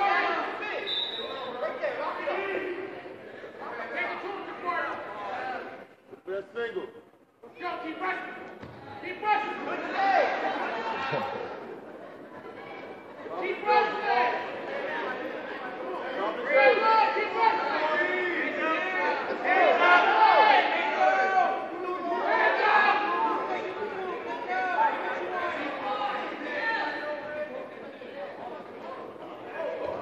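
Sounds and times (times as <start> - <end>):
people shouting and talking: 0.0 - 30.0.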